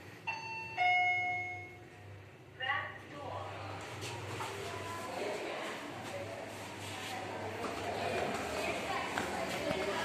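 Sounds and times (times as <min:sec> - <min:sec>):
two-note elevator chime: 0:00.3 - 0:01.9.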